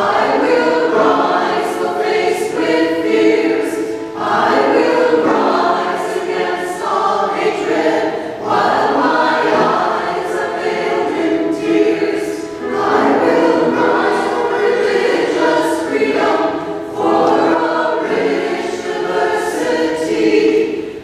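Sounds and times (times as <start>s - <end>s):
church choir singing: 0.0s - 21.0s.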